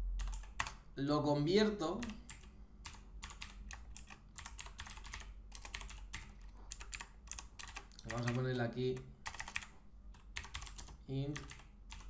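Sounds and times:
typing on computer keyboard: 0.2s - 0.8s, 2.0s - 12.0s.

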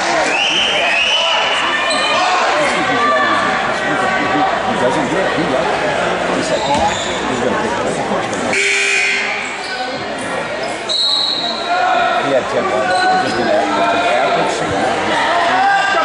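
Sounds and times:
spectators chattering: 0.0s - 16.0s.

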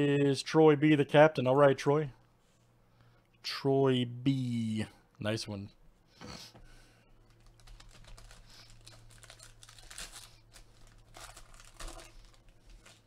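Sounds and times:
foil wrapper crinkling: 7.2s - 13.0s.

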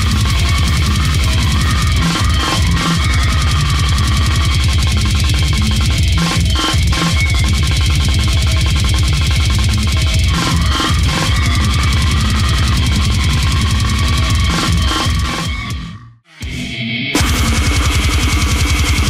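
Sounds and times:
blast-beat drumming: 0.0s - 15.8s, 17.2s - 19.0s
heavily distorted guitars: 0.0s - 19.0s
heavy bass: 0.0s - 19.0s.

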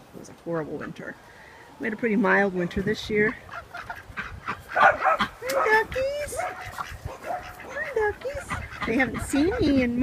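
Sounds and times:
ducks calling: 3.0s - 10.0s.

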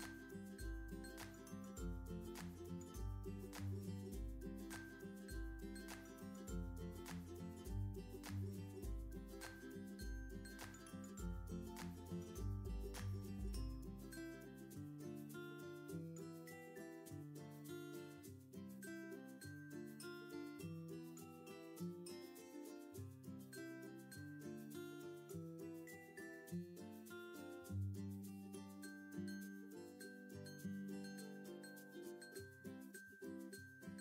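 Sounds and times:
quiet instrumental music: 0.0s - 34.0s.

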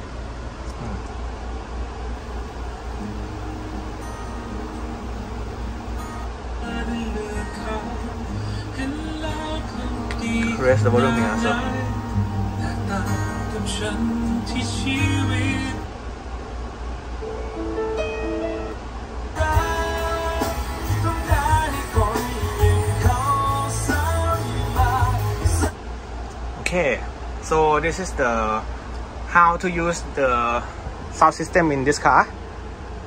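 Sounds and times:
music with singing over car speakers: 2.5s - 16.1s, 17.7s - 26.0s.

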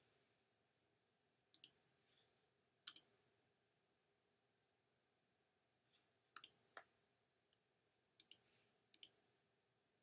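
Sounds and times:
computer mouse clicks: 1.5s - 1.8s, 2.8s - 3.1s, 6.3s - 6.9s, 8.2s - 9.2s.

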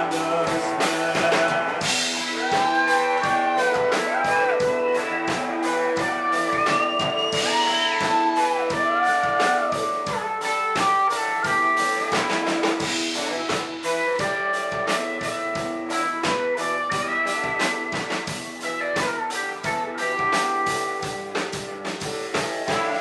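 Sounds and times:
electric guitar lead line: 0.0s - 23.0s
steady drum beat: 0.0s - 23.0s.

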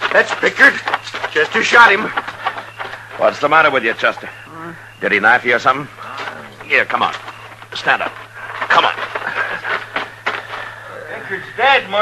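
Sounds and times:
scuffs and knocks: 0.0s - 4.4s
steady low hum: 0.0s - 12.0s.

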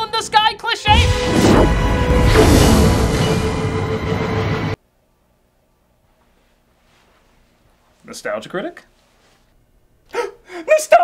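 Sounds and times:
man gasping: 10.1s - 10.7s.

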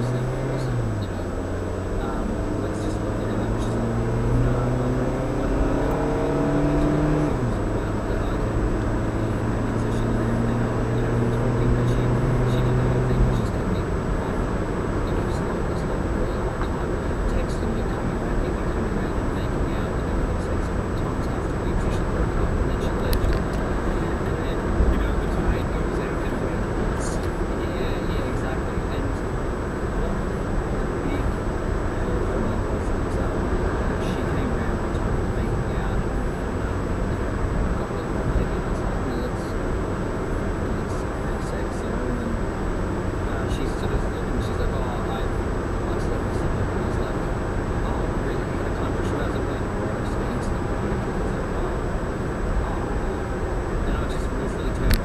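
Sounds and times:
car engine accelerating: 0.0s - 55.0s
tyre and road noise: 0.0s - 55.0s.

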